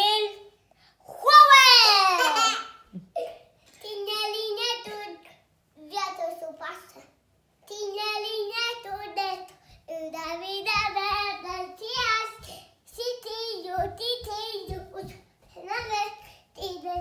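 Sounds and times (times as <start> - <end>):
young child singing: 3.8 - 17.0.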